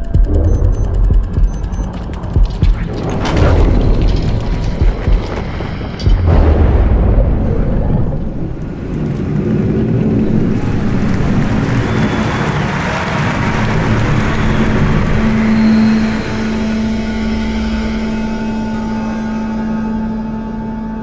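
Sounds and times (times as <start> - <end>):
low rumble drone: 0.0 - 12.6
rushing engine-like swell: 8.5 - 20.0.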